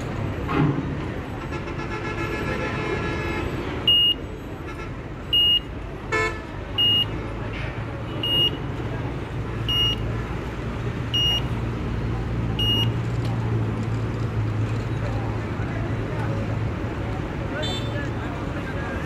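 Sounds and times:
reversing alarm beeping: 0:09.7 - 0:10.0.

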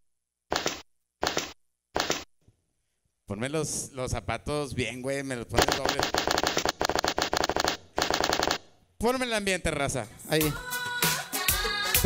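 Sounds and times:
rapid crackling pops: 0:05.5 - 0:08.8.

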